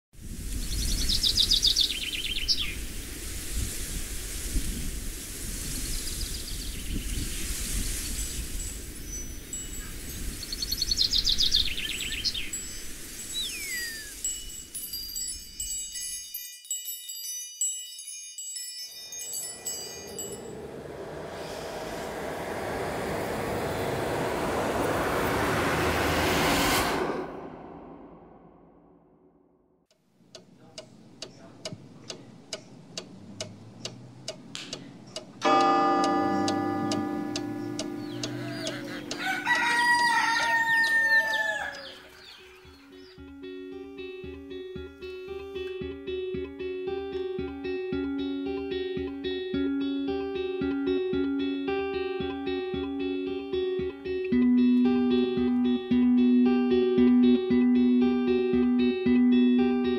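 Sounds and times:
low rumbling wind and rain bed: 0.2 - 15.8, 19.2 - 28.8
high ringing chime tones: 12.5 - 21.1, 35.4 - 38.6
swelling noise: 19.0 - 29.3, 35.4 - 39.4.

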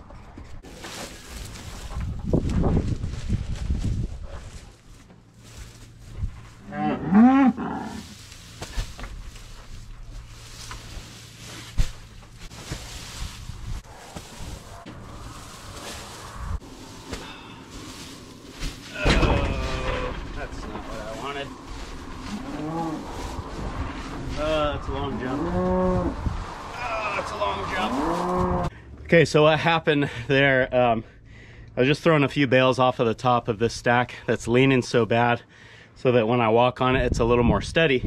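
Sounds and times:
cattle mooing: 6.6 - 8.2, 22.3 - 23.2, 25.0 - 26.2, 27.7 - 28.7
heavy thumps on straw bales: 7.6 - 24.6.

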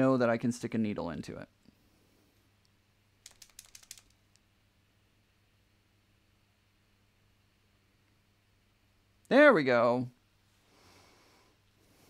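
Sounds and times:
paint pen clicking: 3.2 - 4.2.

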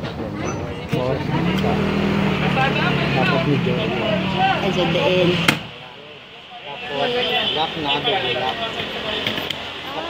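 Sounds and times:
people talking: 0.0 - 10.0
vehicle engine running: 1.1 - 5.6.

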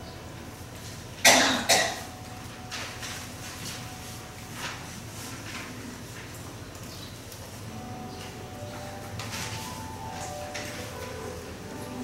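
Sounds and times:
woman coughing: 1.2 - 2.1.

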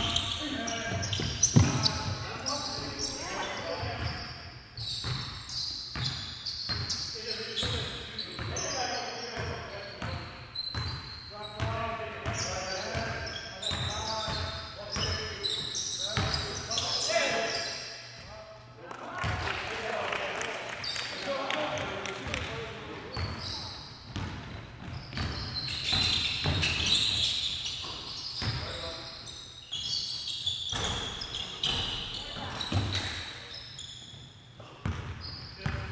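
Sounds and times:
sneakers squeaking: 0.0 - 18.4, 22.2 - 35.9.

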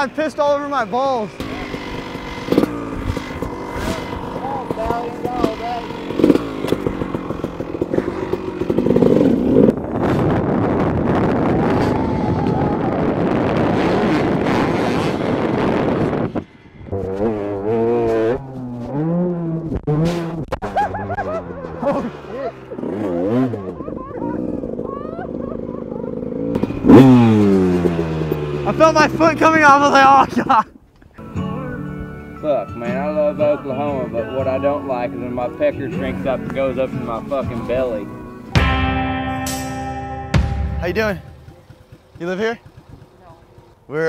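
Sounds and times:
dirt bike engine revving: 0.0 - 30.6, 32.8 - 44.0.

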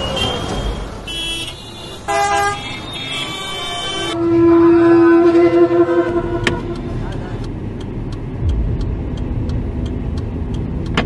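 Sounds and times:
vehicle horns honking: 0.0 - 7.3
city street traffic: 0.0 - 11.0.

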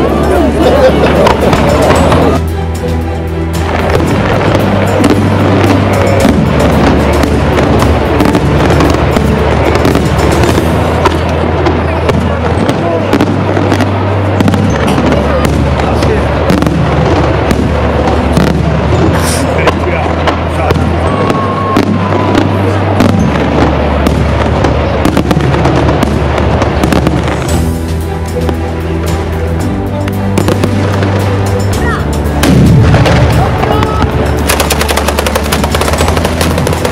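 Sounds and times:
background music with bass line: 0.0 - 11.8, 25.1 - 36.9
firework crackling: 0.0 - 36.9
firework shells bursting: 21.7 - 36.9.

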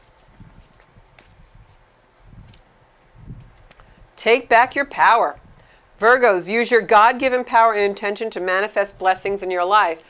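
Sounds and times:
cards being shuffled: 0.0 - 3.9.

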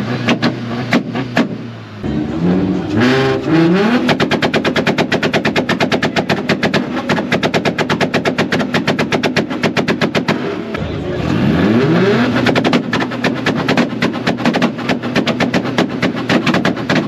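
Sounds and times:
exhaust pops: 0.0 - 1.8, 2.9 - 17.0
car engine revving: 0.0 - 17.0
rapid exhaust bangs: 0.0 - 17.0.

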